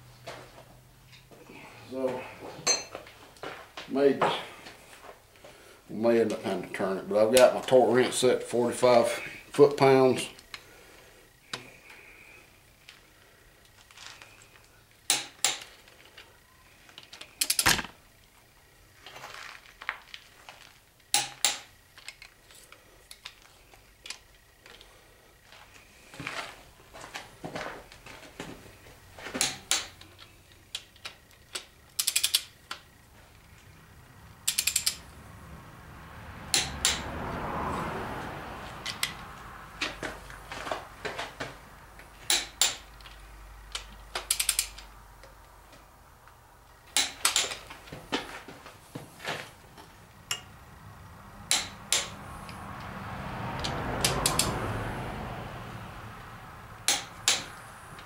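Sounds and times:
torque wrench clicking: 17.4 - 17.8, 30.7 - 32.8, 34.4 - 35.0, 36.5 - 37.0, 43.7 - 44.9, 51.5 - 52.6, 53.6 - 54.5
socket ratchet ratcheting: 32.0 - 32.5, 34.4 - 35.0, 43.8 - 44.9.

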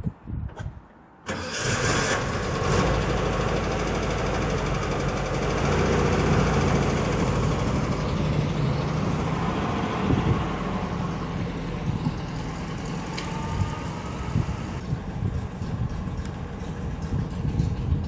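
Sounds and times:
engine cranking and idling: 1.3 - 18.0.

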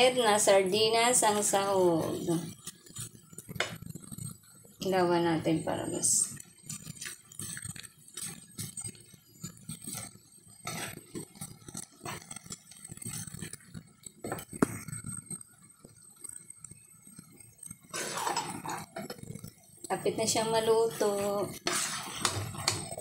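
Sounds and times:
spatula scraping a pan: 0.0 - 23.0.

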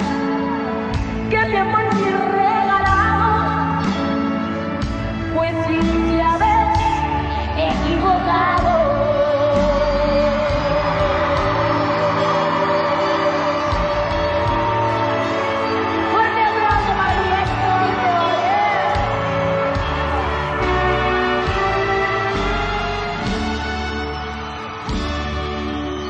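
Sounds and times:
live band music: 0.0 - 26.0
woman singing: 1.2 - 4.5, 5.1 - 21.5.

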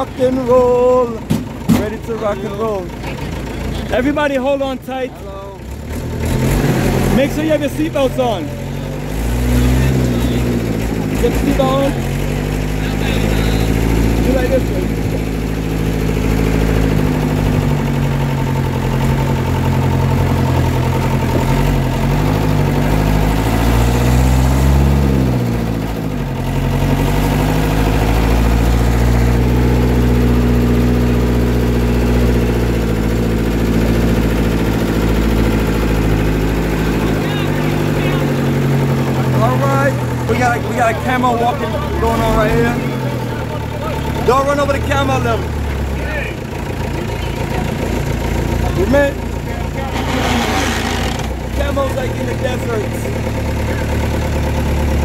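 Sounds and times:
voices: 0.0 - 6.0, 6.7 - 24.1, 32.2 - 54.7
vehicle engine running: 0.0 - 55.0.

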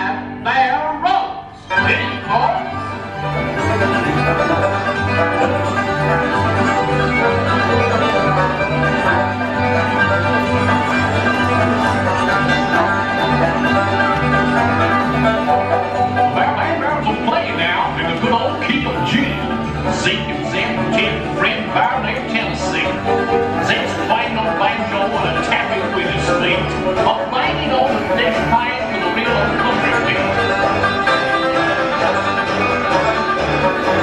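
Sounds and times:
country band music: 0.0 - 34.0.

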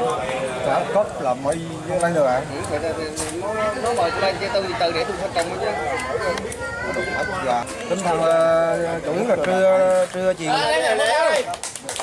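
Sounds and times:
overlapping background voices: 0.0 - 12.0
people talking: 0.0 - 12.0.

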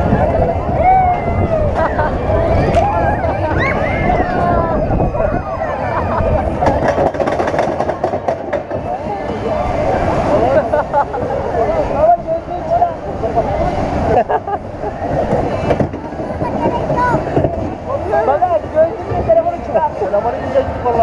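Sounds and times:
riders shouting and laughing: 0.0 - 7.4, 9.4 - 15.7
roller coaster cars rattling: 0.0 - 21.0.

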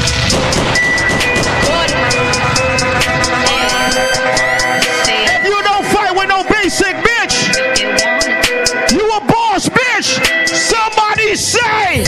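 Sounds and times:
hip-hop club mix with beat: 0.0 - 12.0.

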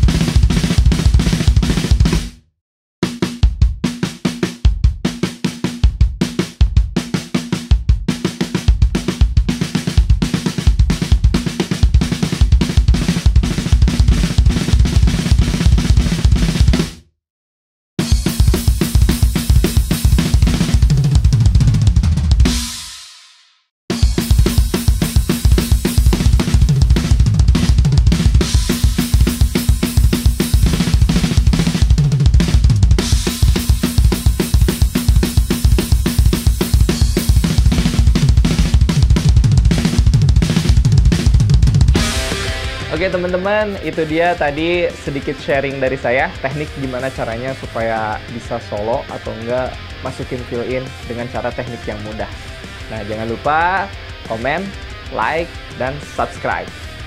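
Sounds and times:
drum kit played fast: 0.0 - 2.4, 3.0 - 17.1, 18.0 - 57.0
cymbal crashes: 42.0 - 45.2.

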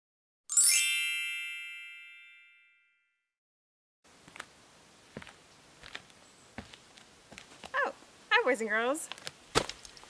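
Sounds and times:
magical bell-like chime: 0.5 - 3.2.

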